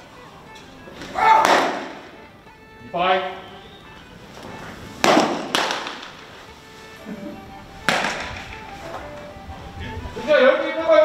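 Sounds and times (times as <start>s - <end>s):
baseballs smacking into mitts: 0.6s - 2.2s, 4.4s - 6.3s, 7.8s - 9.2s.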